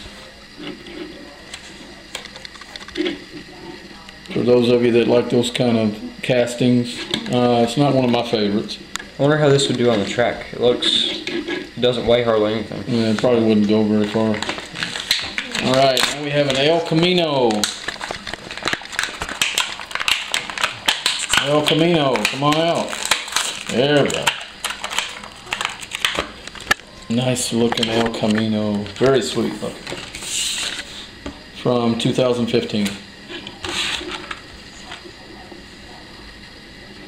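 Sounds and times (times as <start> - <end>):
plastic blister pack crackling: 14.0 - 30.9.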